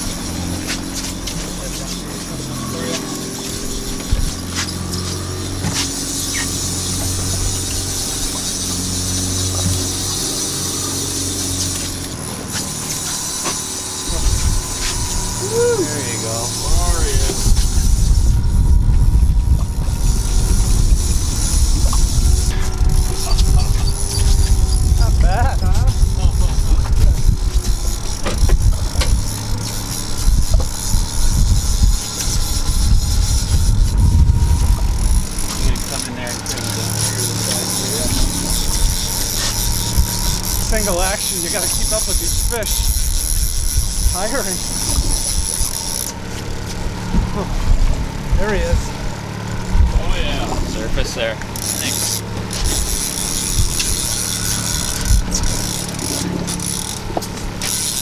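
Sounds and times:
outboard motor humming: 0:00.0 - 0:58.0
wind buffeting microphone: 0:14.0 - 0:51.6, 0:52.2 - 0:57.6.

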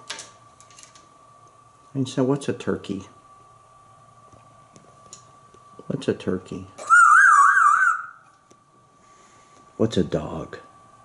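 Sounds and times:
parrot warbling whistle: 0:06.8 - 0:08.3.

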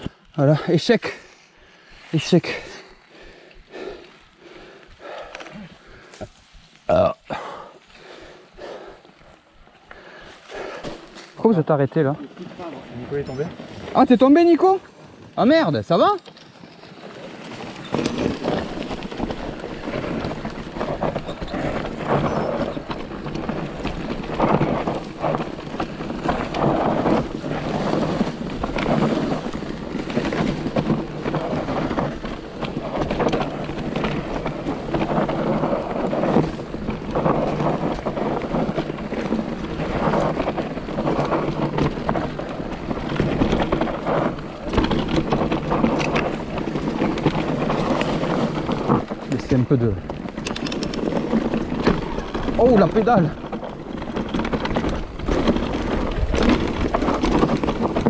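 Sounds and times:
bike tyres rolling on dirt: 0:00.0 - 0:58.0
bike knocking and rattling: 0:02.2 - 0:58.0.

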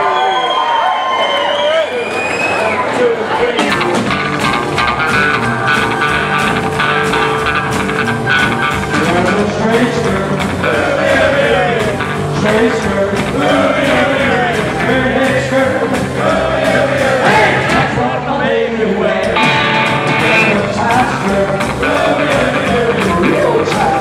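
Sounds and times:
live rockabilly band playing: 0:02.8 - 0:24.0
slapped upright bass: 0:03.6 - 0:18.1, 0:19.1 - 0:24.0
man singing: 0:08.9 - 0:24.0.

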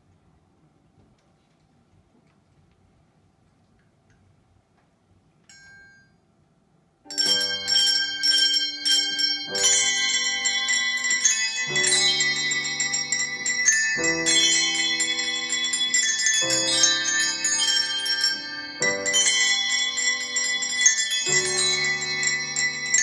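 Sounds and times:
faint bell ring: 0:05.5 - 0:06.5, 0:07.1 - 0:23.0
handbell choir playing chords: 0:07.1 - 0:23.0.

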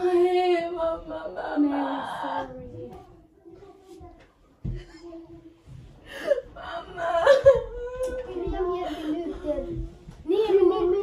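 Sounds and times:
woman whimpering and moaning: 0:06.6 - 0:08.4.

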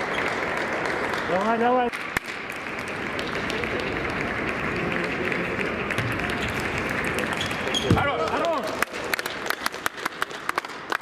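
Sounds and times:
sports hall noise: 0:00.0 - 0:11.0.

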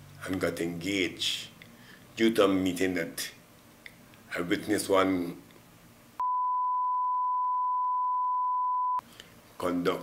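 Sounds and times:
censor beep tone: 0:06.2 - 0:09.0.

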